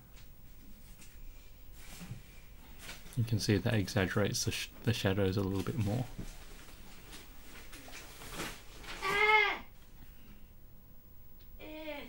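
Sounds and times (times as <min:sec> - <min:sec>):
person crying out loudly: 0:09.0 - 0:09.7, 0:11.6 - 0:12.0.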